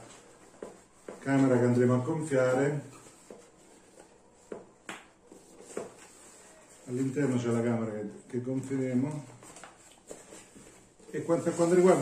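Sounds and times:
rustling of nylon cover: 6.0s - 12.0s.

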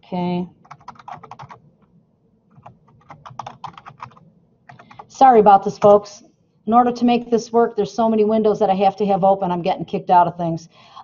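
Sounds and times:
typing on computer keyboard: 0.6s - 1.6s, 2.5s - 5.2s.

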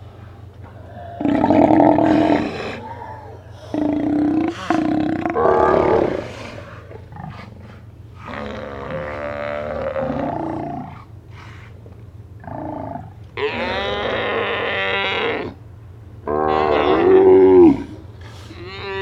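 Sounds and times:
sea lions roaring: 0.6s - 15.6s, 16.2s - 19.0s.

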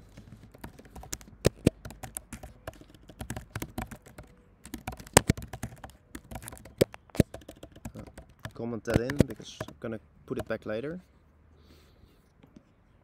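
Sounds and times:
typing on computer keyboard: 0.0s - 10.6s.

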